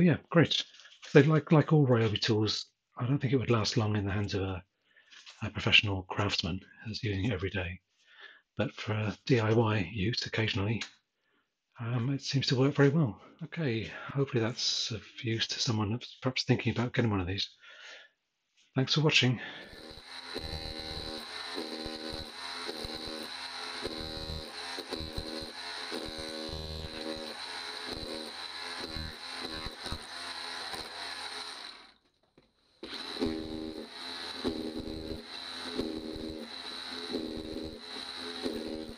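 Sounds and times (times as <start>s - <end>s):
hammer drill chiselling: 19.5s - 38.9s
high motor whine: 19.6s - 32.0s, 32.7s - 38.9s.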